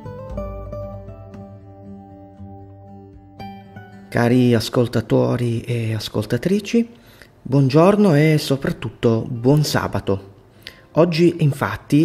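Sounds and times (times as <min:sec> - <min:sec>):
calm instrumental music: 0:00.0 - 0:06.0, 0:07.8 - 0:12.0.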